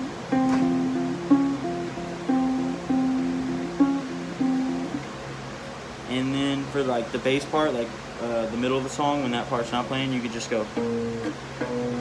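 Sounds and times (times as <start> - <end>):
acoustic guitar plucked notes: 0.0 - 5.1, 10.6 - 12.0.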